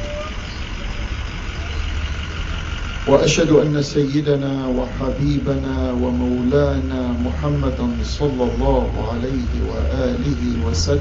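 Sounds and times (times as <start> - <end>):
steady low rumble: 0.3 - 11.0.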